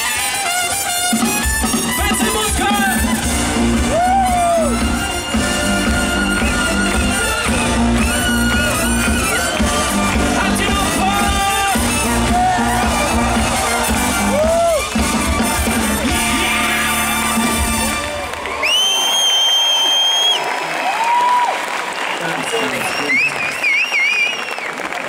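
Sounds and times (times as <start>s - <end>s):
saxophones and trumpet: 0.0s - 18.6s
marching bass drum: 1.1s - 18.2s.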